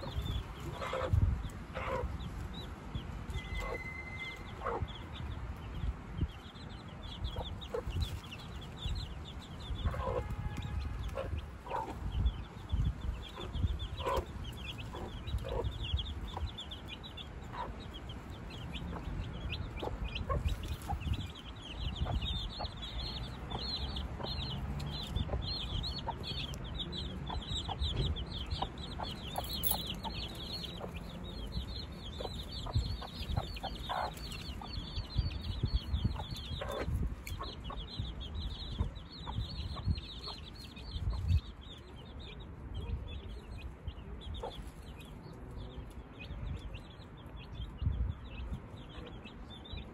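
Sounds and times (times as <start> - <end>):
hen clucking: 0.0 - 2.3, 3.3 - 5.3, 9.8 - 41.2
chicks peeping: 0.0 - 49.9.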